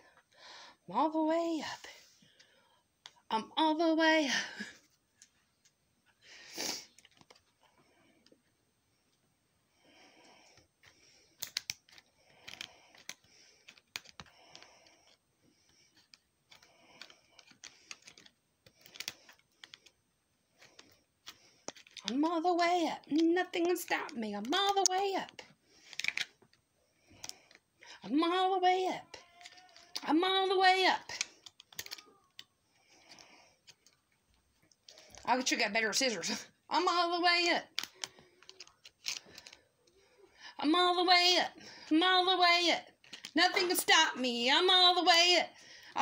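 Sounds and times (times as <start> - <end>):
scissors cutting plastic card: 10.8 - 15.2, 15.9 - 22.2, 23.0 - 26.4, 29.2 - 30.0, 31.1 - 33.9, 37.7 - 39.6.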